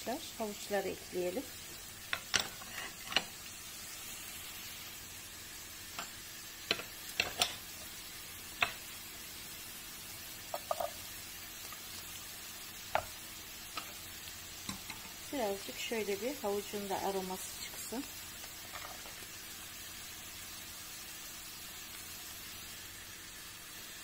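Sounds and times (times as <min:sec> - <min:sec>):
onion sizzling in oil: 0:00.0 - 0:24.0
wooden spoon knocking on a pan: 0:10.5 - 0:11.0, 0:12.9 - 0:13.2.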